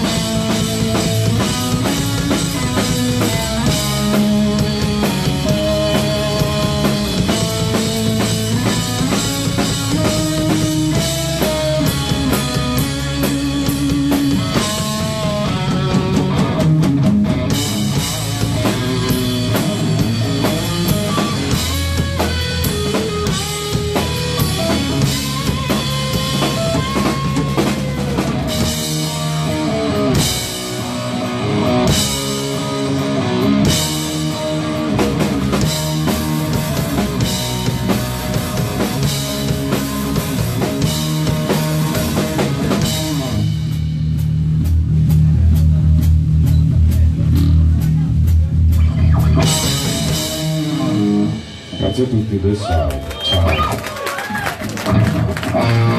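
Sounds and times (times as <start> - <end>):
heavy low guitar riff: 0.0 - 52.6, 54.8 - 55.9
rock band playing live: 0.0 - 55.9.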